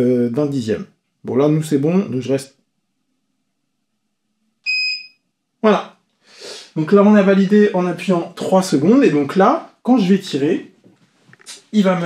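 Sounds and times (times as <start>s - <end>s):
high-pitched electronic beep: 4.7s - 5.2s.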